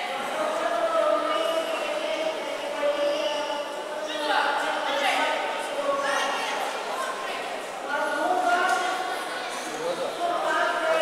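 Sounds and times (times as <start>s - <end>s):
crowd chatter echoing in hall: 0.0s - 11.0s.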